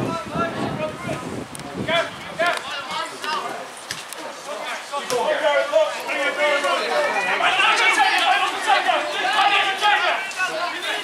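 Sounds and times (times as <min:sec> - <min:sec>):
voices shouting and talking: 0:00.0 - 0:11.0.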